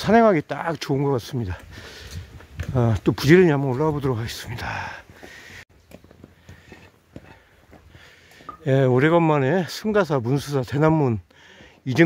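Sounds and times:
faint footsteps on a trail: 0:00.0 - 0:12.0.

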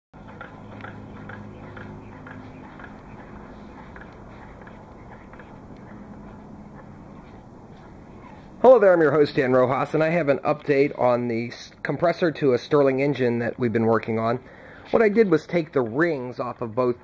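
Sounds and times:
soft ticking: 0:00.2 - 0:08.5.

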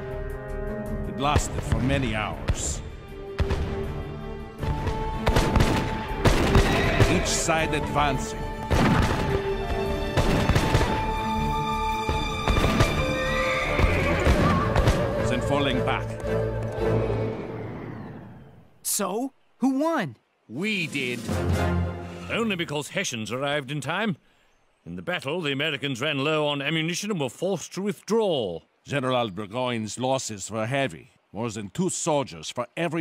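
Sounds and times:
background music with held notes: 0:00.0 - 0:18.2, 0:20.8 - 0:22.6
gunshots: 0:01.3 - 0:04.0, 0:04.6 - 0:07.8, 0:08.6 - 0:11.4, 0:12.1 - 0:15.4
galloping horse hooves: 0:08.6 - 0:16.8.

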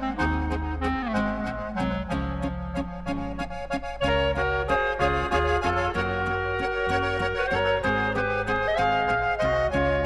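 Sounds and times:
accordion: 0:00.0 - 0:10.0
bass and rhythm accompaniment: 0:00.0 - 0:10.0.

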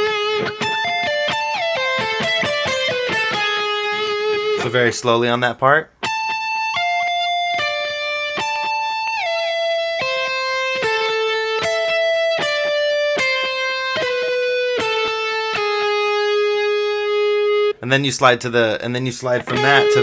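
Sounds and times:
electric guitar lead lick: 0:00.0 - 0:04.7, 0:06.0 - 0:17.8, 0:19.2 - 0:20.0.

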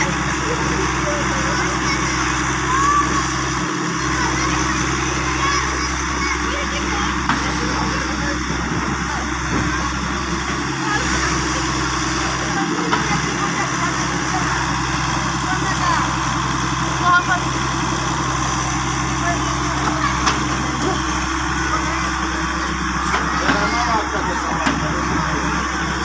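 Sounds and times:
diesel engine running: 0:00.0 - 0:26.0
excavator digging soil: 0:00.0 - 0:26.0.

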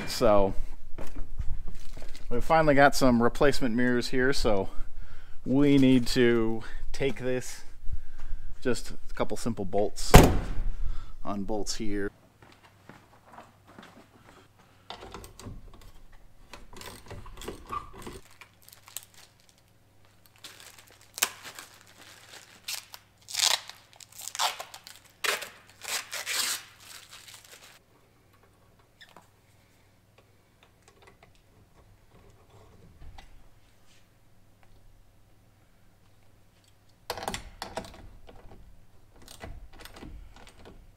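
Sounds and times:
plastic packaging crinkling and tearing: 0:18.1 - 0:27.8.

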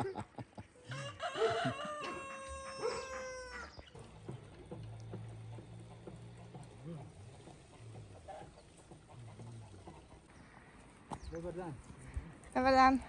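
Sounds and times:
rooster crowing: 0:00.9 - 0:03.8.

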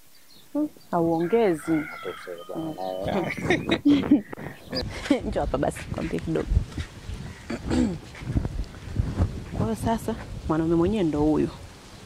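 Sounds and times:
rooster crowing: 0:01.2 - 0:03.0.

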